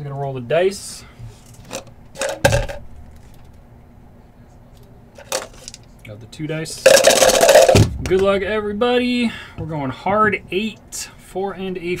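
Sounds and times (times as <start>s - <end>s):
plastic dice clacking: 6.9s - 7.8s.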